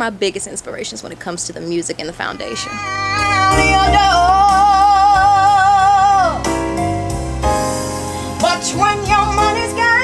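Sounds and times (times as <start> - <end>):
woman singing long held note: 2.5 - 6.4
backing track with bass line: 2.8 - 10.0.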